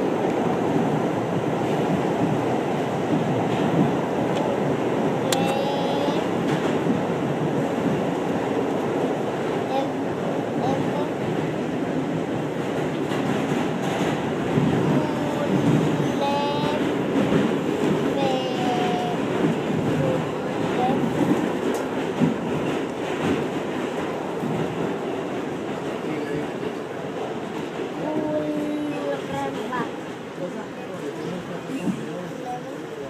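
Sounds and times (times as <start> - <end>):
subway train rumble and rail noise: 0.0 - 33.0.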